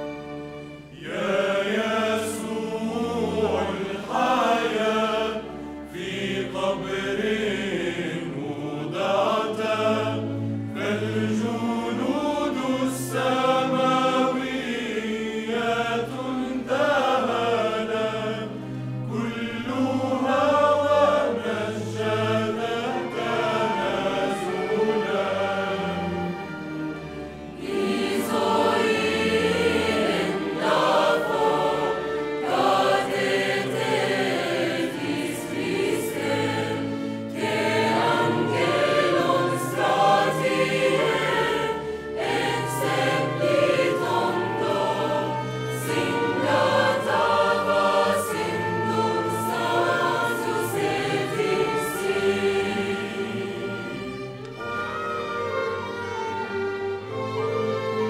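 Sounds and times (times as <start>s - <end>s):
chamber orchestra playing: 0.0s - 58.0s
mixed choir singing: 0.0s - 58.0s.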